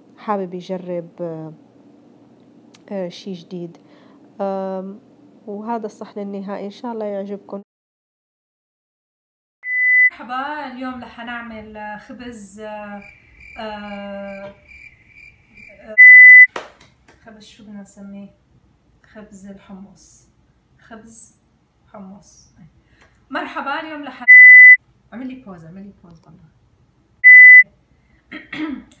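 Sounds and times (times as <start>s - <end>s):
high electronic beep: 9.6s - 10.1s, 16.0s - 16.5s, 24.3s - 24.8s, 27.2s - 27.6s.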